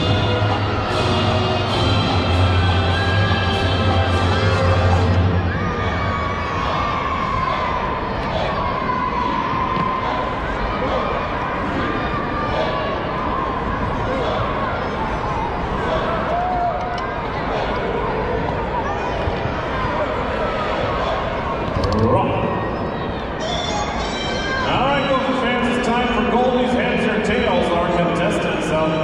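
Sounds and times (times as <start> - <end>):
crowd talking: 0.0 - 29.0.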